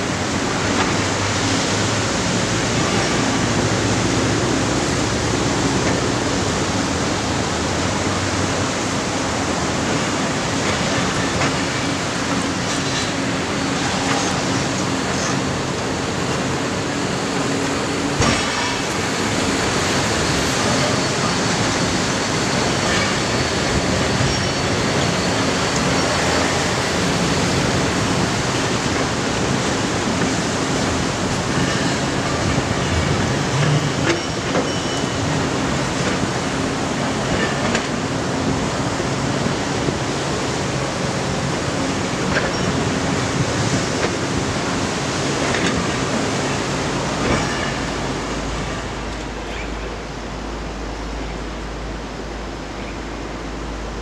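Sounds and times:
traffic roar: 0.0 - 54.0.

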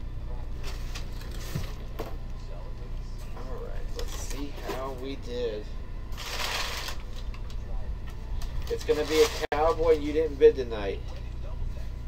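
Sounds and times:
packing paper rustling: 6.2 - 7.6, 8.4 - 10.2.

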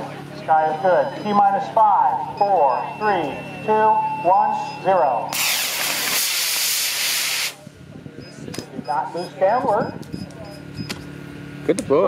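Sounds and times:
rocket motor rushing hiss: 5.4 - 7.6.

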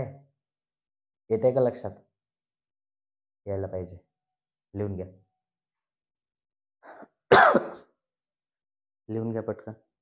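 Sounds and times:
man coughing: 6.9 - 7.9.

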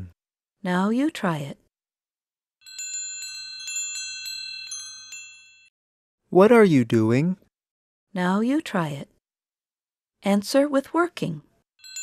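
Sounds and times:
chimes ringing: 2.6 - 5.7, 11.8 - 12.0.

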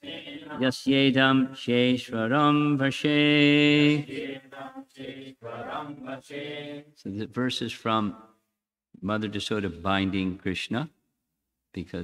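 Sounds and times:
man chanting verse: 7.0 - 8.4.

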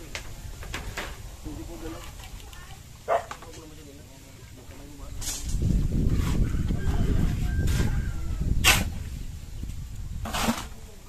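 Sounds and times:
wind buffeting microphone: 5.0 - 11.0
short scraping sounds: 10.2 - 10.8.

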